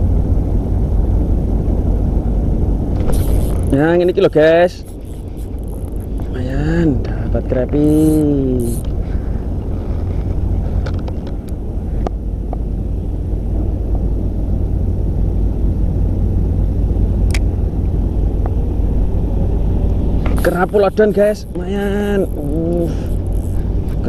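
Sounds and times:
steady low rumble: 0.0 - 24.0.

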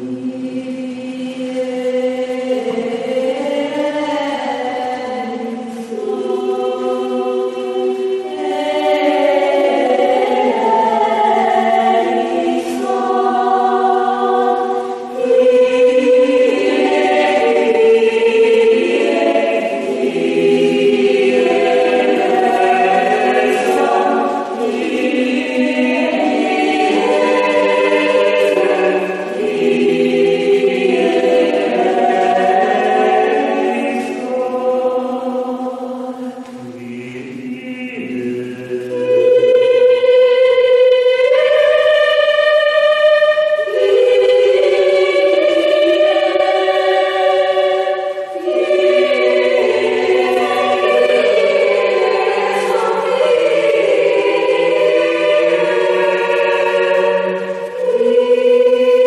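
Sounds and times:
choir singing a cappella: 0.0 - 59.0.

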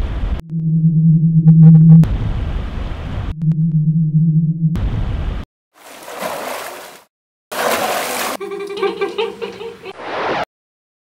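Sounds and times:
low droning tone: 0.0 - 4.9.

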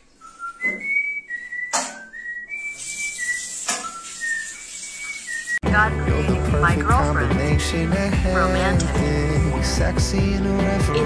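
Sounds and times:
person whistling a tune: 0.1 - 5.6
music with vocals: 5.6 - 11.0.

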